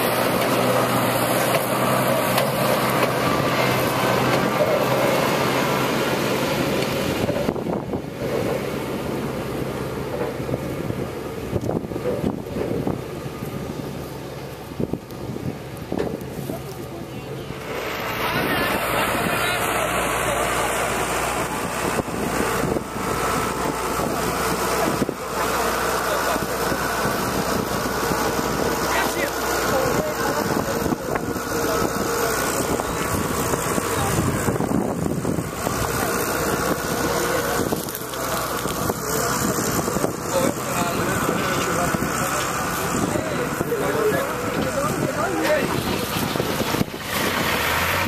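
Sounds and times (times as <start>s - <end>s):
engine running: 0.0s - 48.0s
wind buffeting microphone: 6.6s - 8.6s, 10.4s - 17.6s, 18.2s - 47.7s.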